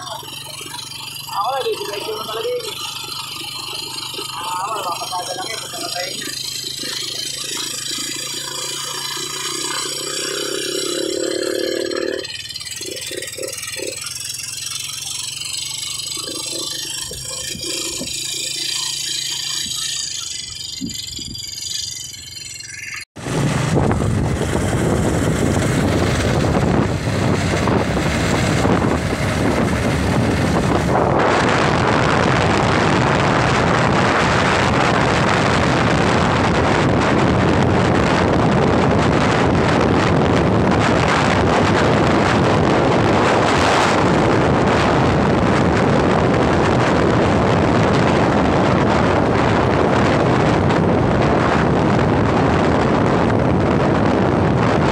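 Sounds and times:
low engine drone: 0.0 - 54.9
motorcycle engine: 0.0 - 54.9
wind rushing over microphone: 19.5 - 21.5, 23.2 - 54.9.

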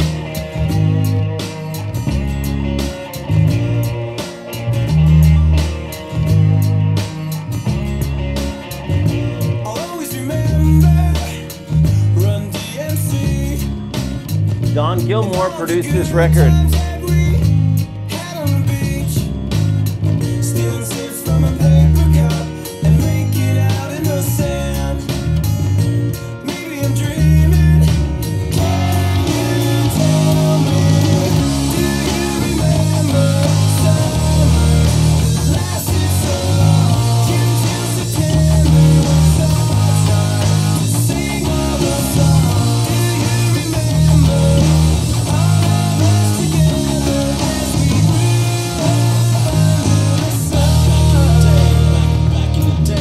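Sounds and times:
electric bass fingerstyle: 0.0 - 53.0
rock band music: 0.0 - 53.0.

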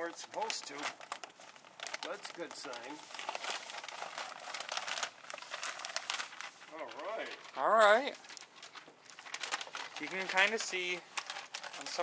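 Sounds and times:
chocolate bark cracking: 0.0 - 12.0
parchment paper crinkling: 0.0 - 12.0.

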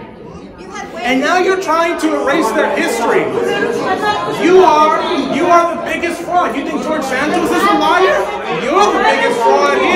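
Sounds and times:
voices talking in echoing room: 0.0 - 9.9.

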